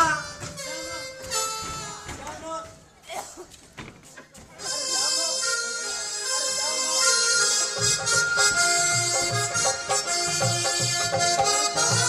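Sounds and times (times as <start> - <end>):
stage music with reed melody: 0.0 - 2.2, 4.6 - 12.0.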